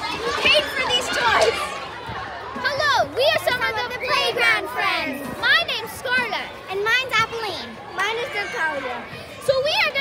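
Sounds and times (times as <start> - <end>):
young girl talking: 2.6 - 10.0.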